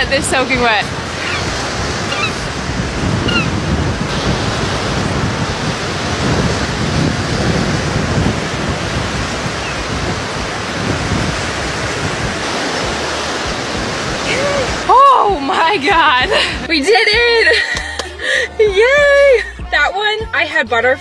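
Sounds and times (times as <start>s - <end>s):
waves breaking on beach: 0.0s - 17.5s
wind buffeting microphone: 0.0s - 19.4s.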